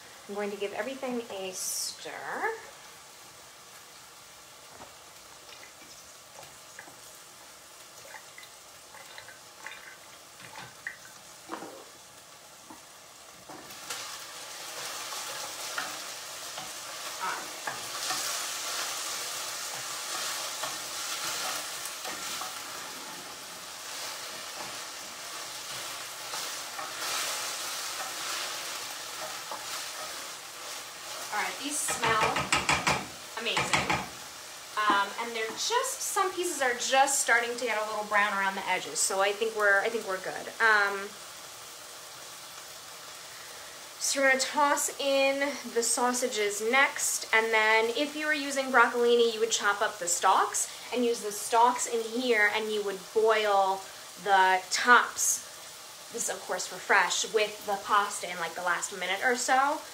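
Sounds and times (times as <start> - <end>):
onions sizzling in a pan: 0.0 - 59.9
spatula scraping and knocking pan: 14.7 - 34.2.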